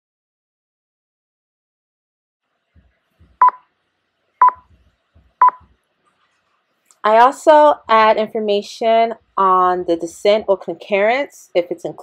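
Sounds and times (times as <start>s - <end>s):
short electronic beeps: 4.4s - 4.6s, 5.4s - 5.6s.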